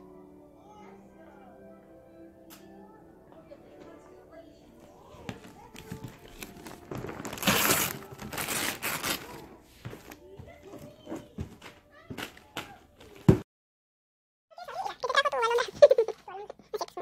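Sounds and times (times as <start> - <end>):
paper rustling: 5.0 - 13.4
wrapping paper tearing: 5.4 - 9.6.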